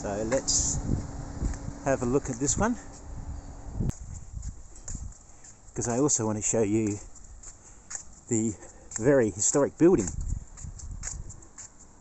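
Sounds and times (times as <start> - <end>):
low rumble: 0.0 - 3.9
footsteps on concrete: 3.9 - 12.0.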